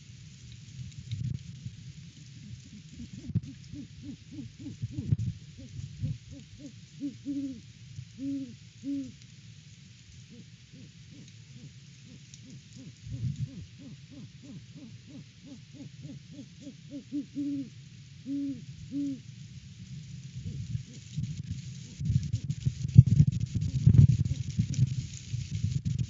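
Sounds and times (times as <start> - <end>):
wind rumbling on microphone: 0.0 - 6.9, 10.2 - 15.2, 18.6 - 26.0
owl hooting: 2.4 - 9.2, 10.3 - 19.3, 20.4 - 21.1.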